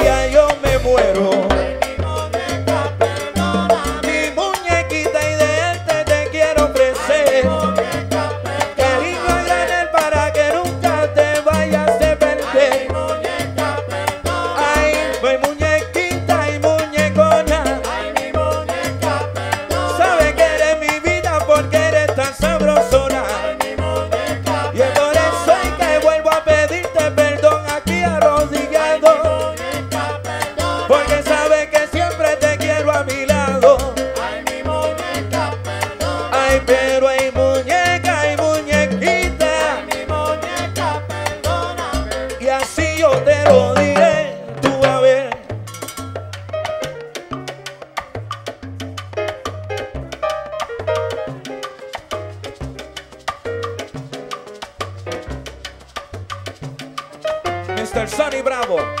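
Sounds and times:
stepping bass line: 0.0 - 45.7
congas and latin percussion: 0.0 - 59.0
salsa band playing: 0.0 - 59.0.

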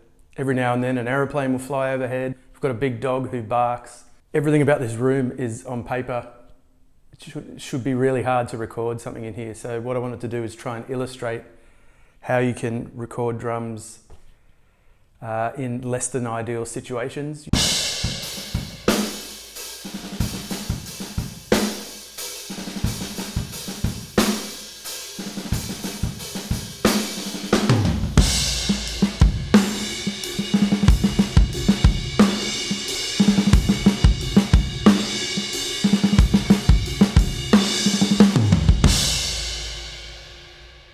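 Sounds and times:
acoustic drum kit groove: 17.5 - 40.9.

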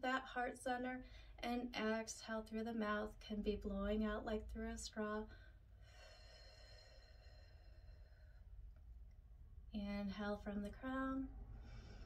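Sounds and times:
faint exhale through pursed lips: 11.5 - 12.0.

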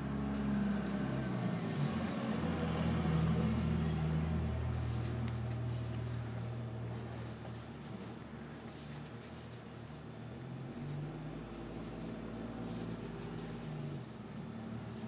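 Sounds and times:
low engine-like hum: 0.0 - 15.0.

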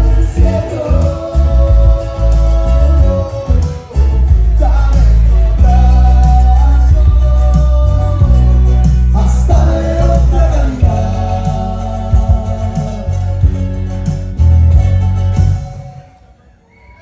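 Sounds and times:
man singing long notes: 0.0 - 13.5
electric bass: 0.0 - 16.0
acoustic guitar: 0.0 - 16.2.

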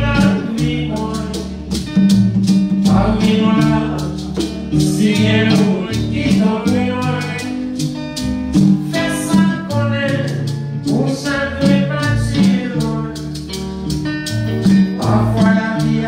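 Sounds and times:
man singing: 0.0 - 1.6, 2.8 - 7.8, 8.8 - 13.4, 15.0 - 16.0
acoustic guitar strummed: 0.0 - 16.0
hand drum: 0.0 - 16.0
maracas shaking: 0.0 - 16.0.

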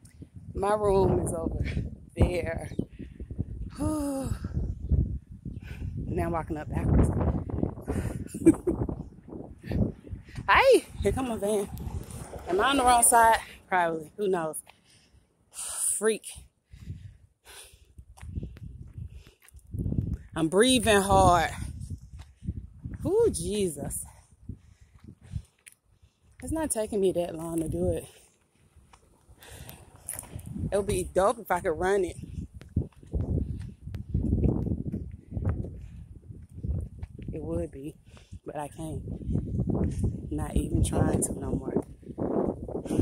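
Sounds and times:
person breathing hard: 16.6 - 19.5
footsteps on concrete: 18.0 - 21.1, 21.9 - 23.6, 24.8 - 31.2, 32.0 - 37.4.

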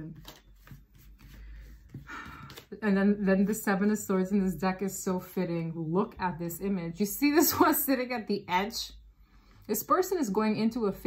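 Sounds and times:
cards sliding on cloth: 0.2 - 2.7.

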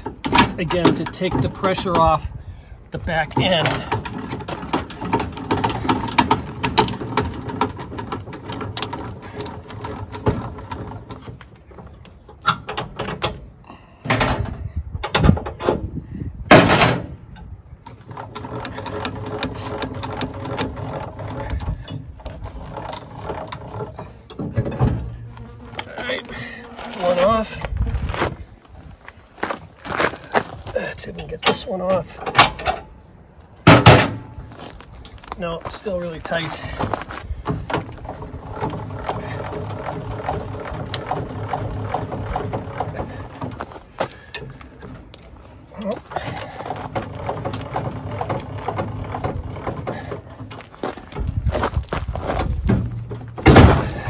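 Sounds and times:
sharp metallic clunks: 0.0 - 2.2, 16.5 - 25.3, 31.2 - 34.5, 52.4 - 54.0
jack gears grinding with whine: 17.8 - 28.5, 33.8 - 54.0.

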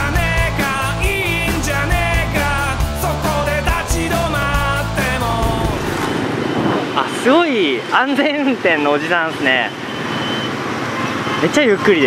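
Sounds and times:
rock music: 0.0 - 6.3
passing cars and motorbikes: 3.8 - 12.0.

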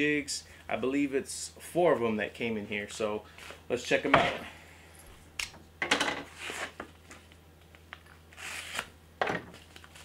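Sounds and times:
knife scraping through envelope: 8.3 - 8.9.

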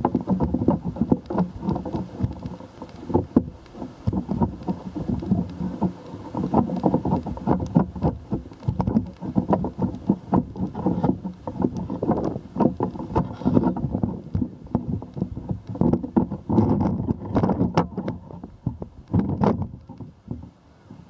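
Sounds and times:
pole knocking and rattling: 0.0 - 20.6
wind buffeting microphone: 0.0 - 21.0.

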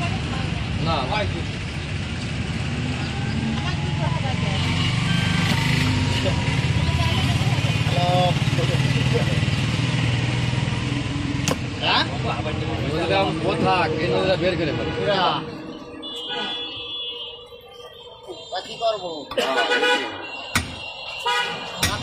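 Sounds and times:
people talking: 6.2 - 9.4, 17.8 - 19.9, 21.8 - 22.0.

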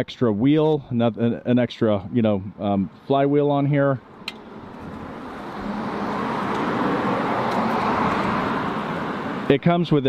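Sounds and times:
road vehicle approaching: 2.5 - 10.0.

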